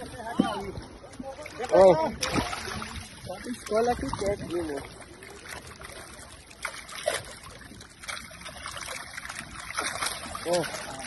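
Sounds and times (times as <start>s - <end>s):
fish splashing in shallow water: 0.0s - 11.0s
trickle of running water: 2.5s - 11.0s.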